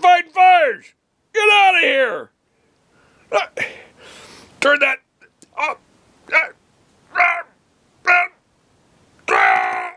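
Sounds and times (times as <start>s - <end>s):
man shouting harsh cries: 5.6s - 8.4s, 9.2s - 9.9s.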